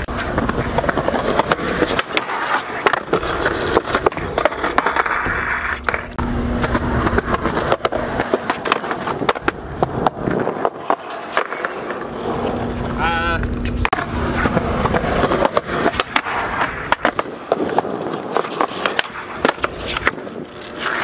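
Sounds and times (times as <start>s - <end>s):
skateboard clacks: 0.0s - 21.0s
skateboard trucks grinding: 0.0s - 21.0s
skateboard wheels rolling on concrete: 0.0s - 21.0s.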